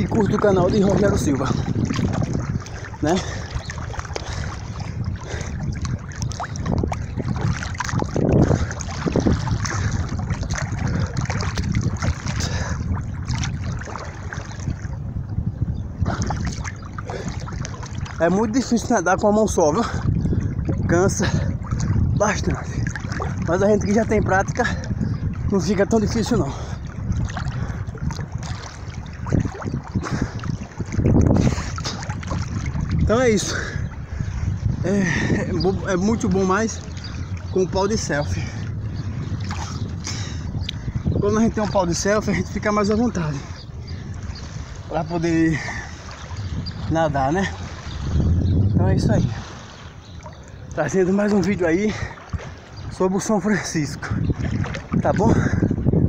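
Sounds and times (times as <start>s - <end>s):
water splashing and sloshing: 0.0s - 56.0s
wind rumble on microphone: 0.0s - 56.0s
swimming stroke splashes: 0.3s - 14.7s, 27.2s - 32.9s.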